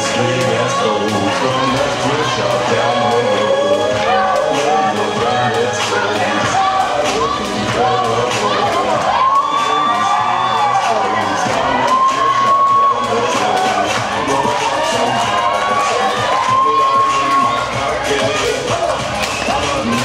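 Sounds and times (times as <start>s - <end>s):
crowd cheering and shouting: 0.0s - 20.0s
music playing: 0.0s - 20.0s.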